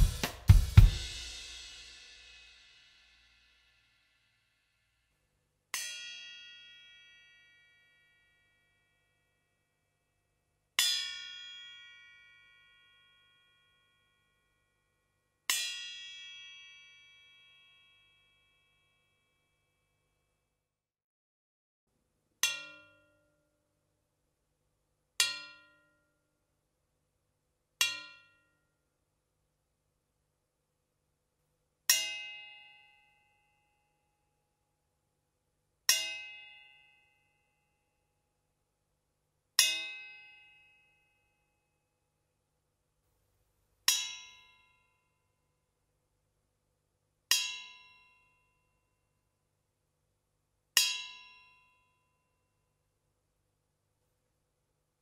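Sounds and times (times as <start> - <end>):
drumstick tapping metal hoop: 25.2 - 25.8, 27.8 - 28.4, 50.8 - 51.4.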